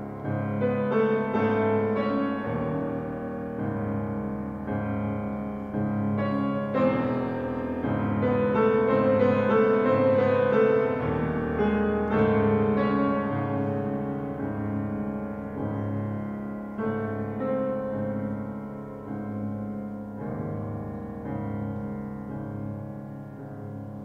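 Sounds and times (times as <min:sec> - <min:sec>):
grand piano classical passage: 0:00.0 - 0:24.0.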